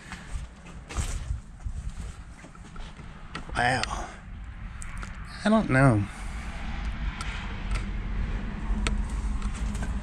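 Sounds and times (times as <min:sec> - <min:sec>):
footsteps on debris: 0:00.0 - 0:03.5
steady low rumble: 0:01.2 - 0:10.0.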